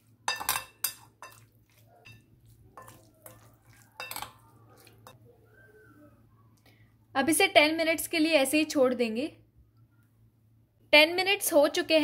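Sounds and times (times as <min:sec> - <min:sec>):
spoon stirring thick marinade: 0:00.0 - 0:05.3
spoon clinking against glass: 0:00.3 - 0:01.4, 0:02.0 - 0:02.2, 0:02.8 - 0:05.2.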